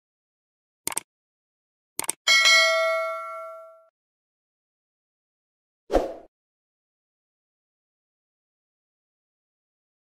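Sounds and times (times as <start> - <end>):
quick clicks: 0.9 - 1.1, 2.0 - 2.2
bright bell ding: 2.3 - 3.9.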